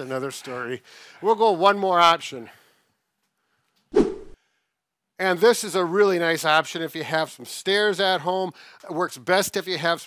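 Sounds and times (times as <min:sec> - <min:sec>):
whoosh sound effect: 0:03.9 - 0:04.4.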